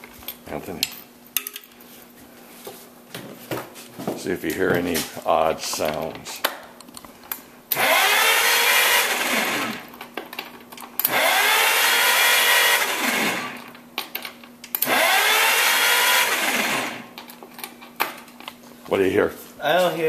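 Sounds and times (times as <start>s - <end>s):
engine cranked by starter motor: 7.7s - 9.9s, 11.0s - 13.6s, 14.8s - 17.1s.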